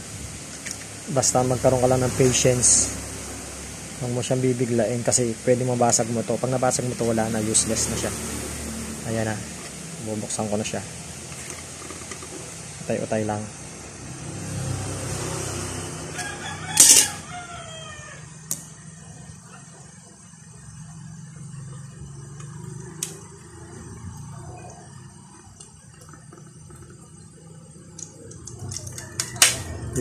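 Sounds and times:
rooster crowing: 0:15.6 - 0:18.9, 0:28.6 - 0:30.0.

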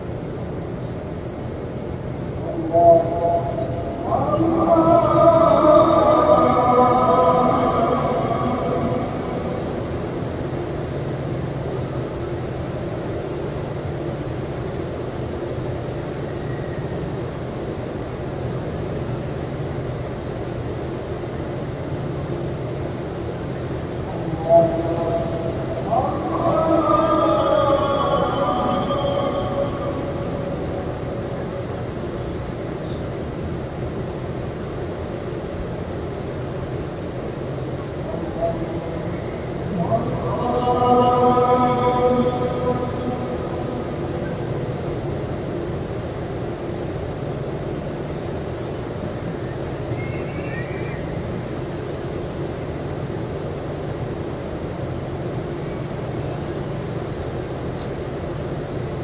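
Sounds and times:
rumbling crowd ambience: 0:00.0 - 0:59.0
voice rising over crowd: 0:02.4 - 0:09.8.

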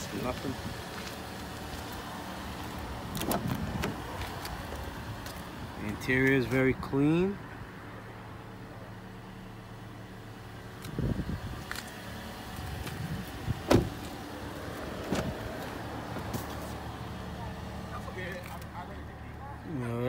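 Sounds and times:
car door shutting: 0:03.2 - 0:04.0, 0:13.6 - 0:14.2, 0:15.0 - 0:16.5
car door knocks and clunks: 0:12.9 - 0:14.2, 0:15.0 - 0:16.3.

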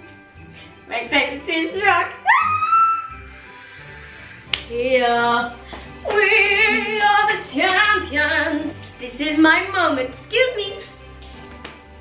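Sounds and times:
music with jingle bells: 0:00.0 - 0:12.0
high celebratory squeal: 0:02.2 - 0:04.5.

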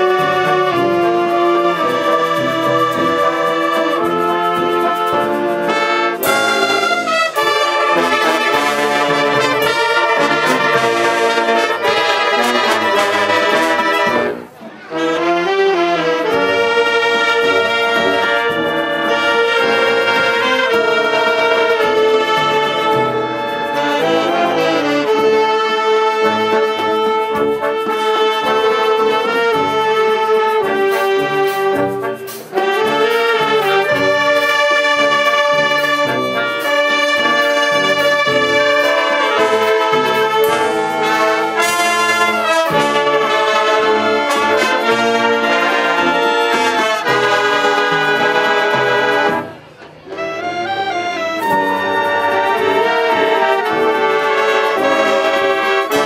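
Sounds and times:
wind band playing sustained chords: 0:00.0 - 0:56.0.

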